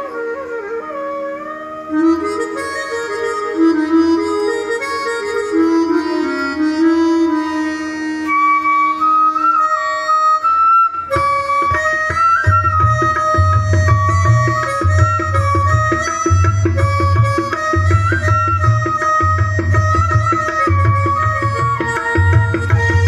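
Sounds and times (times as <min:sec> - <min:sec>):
sliding wind instrument melody: 0:00.0 - 0:23.0
tabla strokes: 0:00.0 - 0:23.0.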